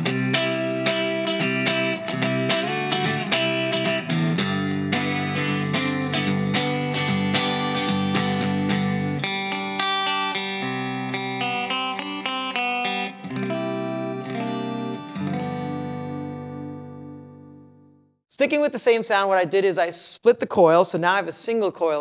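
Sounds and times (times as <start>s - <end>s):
clean electric guitar: 0.0s - 18.1s.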